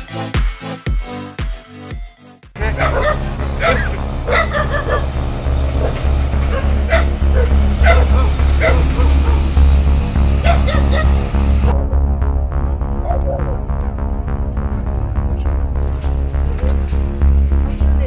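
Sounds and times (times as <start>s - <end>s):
music with bass beat: 0.0s - 18.0s
dog barking and yipping: 2.6s - 9.6s, 10.4s - 11.4s, 13.0s - 13.6s.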